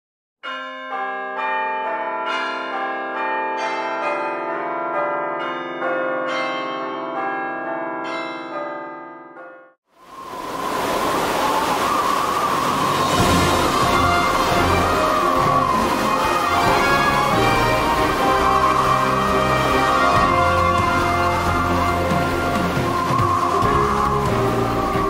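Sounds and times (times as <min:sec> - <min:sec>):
bells ringing: 0:00.4 - 0:10.4, 0:12.0 - 0:25.0
steady rushing noise: 0:10.0 - 0:25.0.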